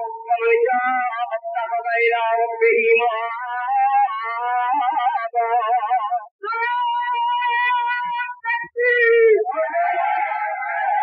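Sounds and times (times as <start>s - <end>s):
person chanting with vibrato: 0.0s - 11.0s.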